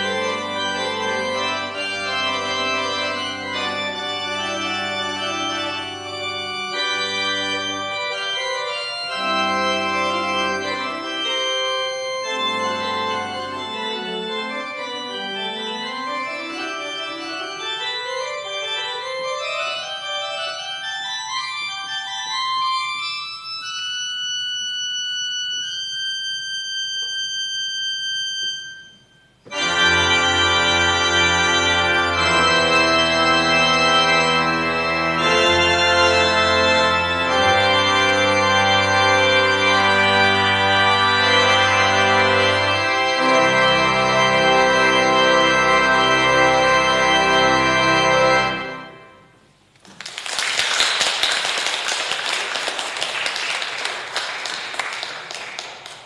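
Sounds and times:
organ sustained chord: 0.0s - 56.0s
congregation clapping: 49.7s - 56.0s.

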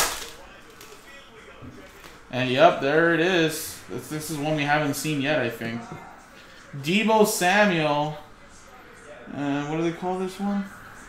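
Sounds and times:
foil wrapper tearing: 0.0s - 1.0s
faint handling noise: 0.1s - 2.3s.

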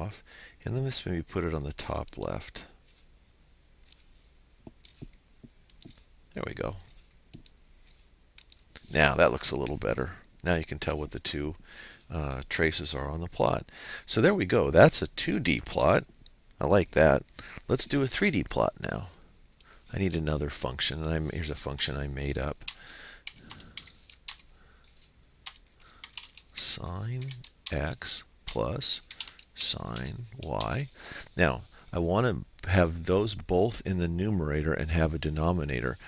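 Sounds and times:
faint computer mouse clicks: 4.7s - 6.1s, 6.9s - 8.6s.

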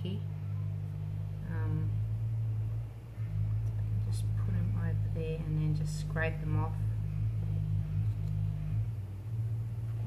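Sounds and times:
low steady hum: 0.0s - 10.0s.

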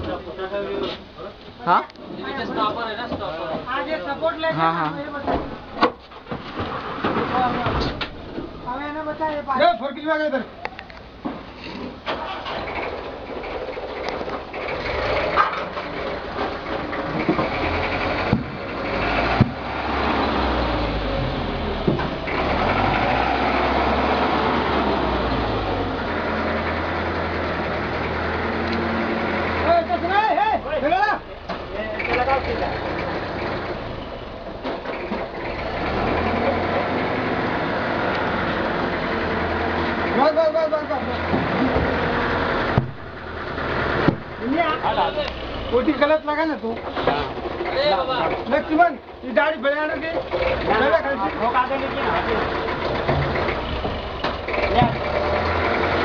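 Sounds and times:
vehicle engine running: 12.3s - 49.2s, 50.0s - 56.0s
sharp knocks: 17.2s - 18.6s, 19.2s - 19.7s, 42.7s - 43.2s, 44.0s - 44.4s
voices talking: 39.9s - 53.8s.

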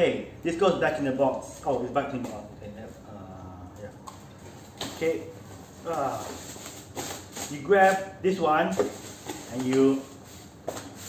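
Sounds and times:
plastic bag rustling and crinkling: 4.4s - 11.0s.

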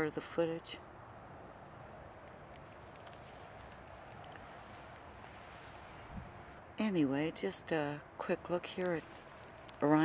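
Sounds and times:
faint outdoor background noise: 0.0s - 10.0s
light ticks: 2.2s - 5.5s.

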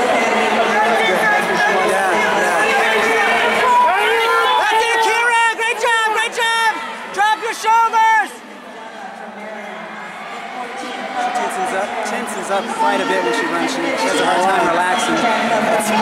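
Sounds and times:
indoor crowd chatter: 0.0s - 16.0s.

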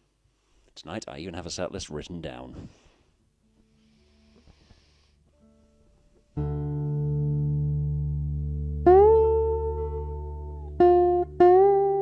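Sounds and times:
acoustic guitar chord ringing: 6.4s - 12.0s
sliding high guitar note: 6.4s - 12.0s.

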